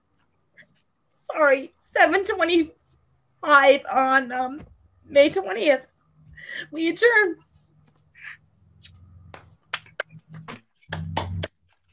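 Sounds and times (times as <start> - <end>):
hand claps over video call: 9.2 - 11.9.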